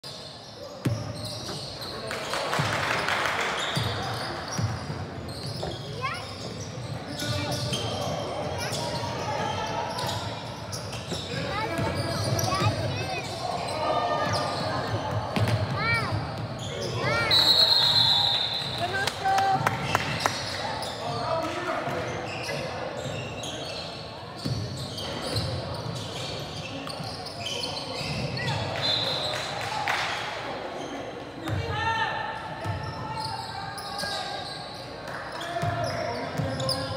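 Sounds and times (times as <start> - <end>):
voices in gym: 0.0 - 36.9
shoes squeaking: 0.1 - 29.5, 32.8 - 36.9
ball bouncing on court: 0.8 - 6.6, 10.9 - 13.1, 14.2 - 16.7, 31.4 - 31.7
referee's whistle blast: 17.2 - 18.8.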